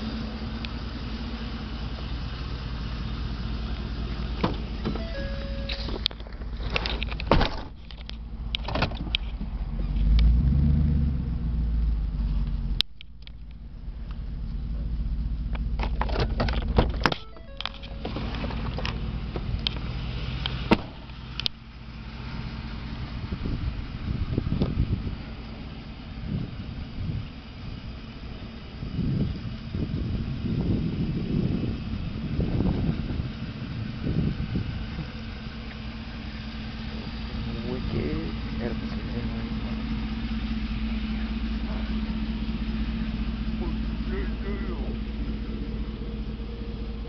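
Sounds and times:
pickup engine idling: 0:00.0 - 0:10.3, 0:11.1 - 0:47.0
irregular low rumbles: 0:00.0 - 0:47.0.

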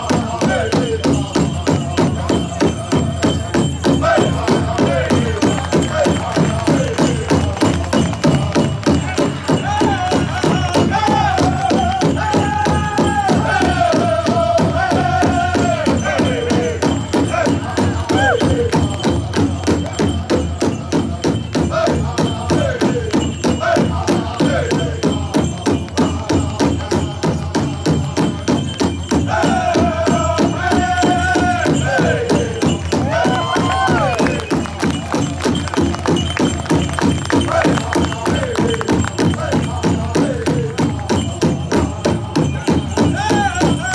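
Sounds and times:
high-pitched chanted singing: 0:00.0 - 0:43.9
steady drumbeat: 0:00.0 - 0:43.9.

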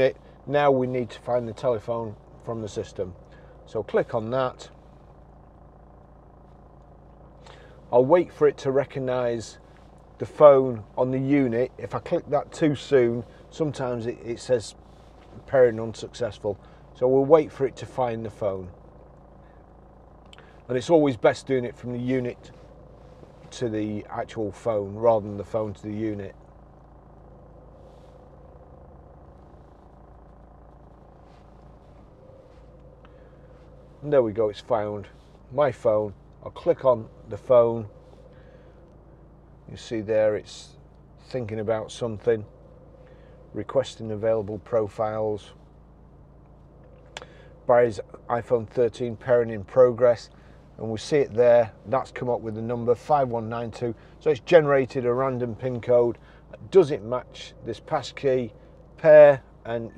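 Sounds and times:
van engine idling: 0:00.0 - 0:59.9.

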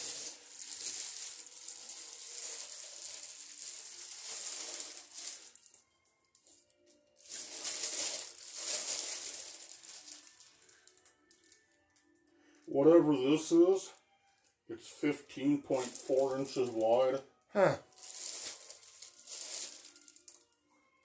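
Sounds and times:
packaging rustling and crinkling: 0:00.0 - 0:05.8, 0:07.2 - 0:11.6, 0:15.7 - 0:17.0, 0:17.9 - 0:20.4.

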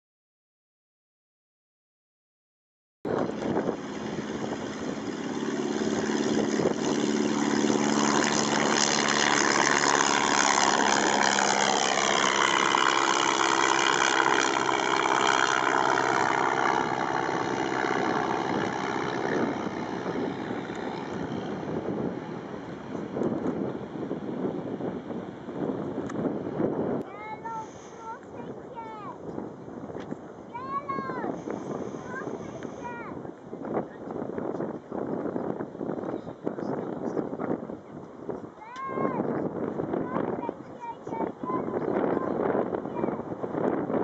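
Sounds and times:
propeller aircraft flying past: 0:03.1 - 0:36.0, 0:37.4 - 0:44.0.

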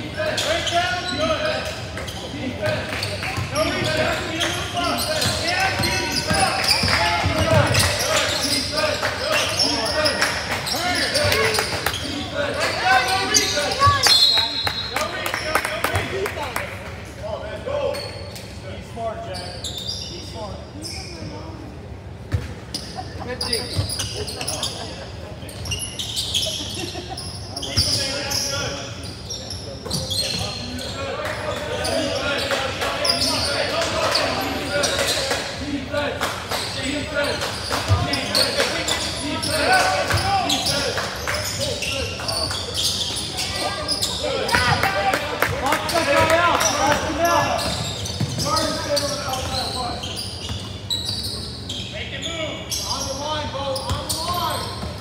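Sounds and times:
voices echoing in a gym: 0:00.0 - 0:55.0.

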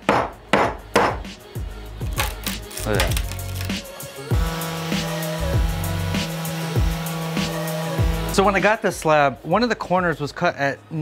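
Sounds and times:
background music with regular beat: 0:00.0 - 0:10.2.

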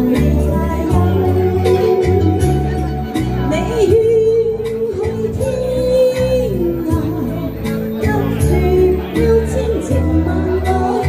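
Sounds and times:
recorded backing track: 0:00.0 - 0:11.0
woman singing into a microphone: 0:00.0 - 0:11.0.

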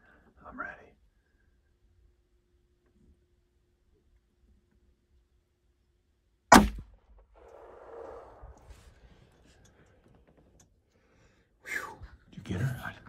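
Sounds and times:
handgun shot: 0:06.5 - 0:06.9.

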